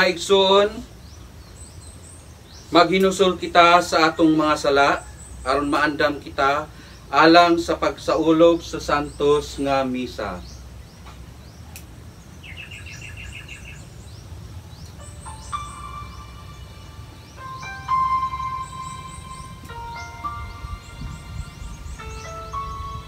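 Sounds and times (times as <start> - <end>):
birds chirping: 0.0 - 23.0
organ-like keyboard chords: 0.0 - 23.0.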